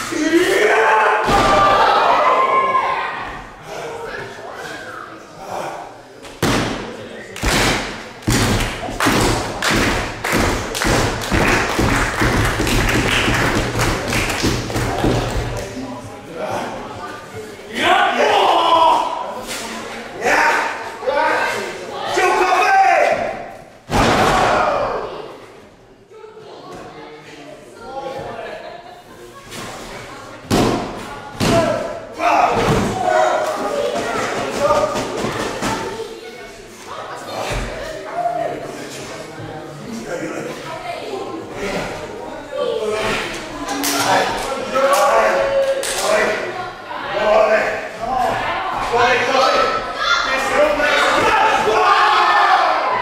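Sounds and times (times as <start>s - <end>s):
people shouting: 0.0s - 3.5s, 17.8s - 19.3s, 48.3s - 53.0s
crowd clapping along: 8.6s - 14.9s.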